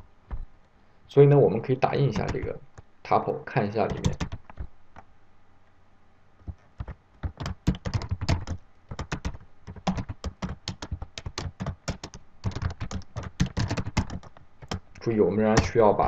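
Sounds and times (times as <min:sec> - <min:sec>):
typing on computer keyboard: 0:02.1 - 0:02.5, 0:03.9 - 0:04.7, 0:06.4 - 0:15.0.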